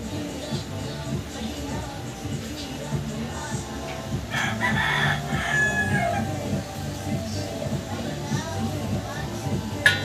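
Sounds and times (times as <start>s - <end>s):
rooster crowing: 4.3s - 6.4s.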